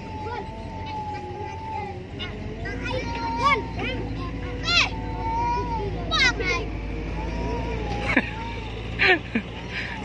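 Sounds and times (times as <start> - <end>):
children calling and squealing: 0.0 - 10.0
low engine-like drone: 0.0 - 10.0.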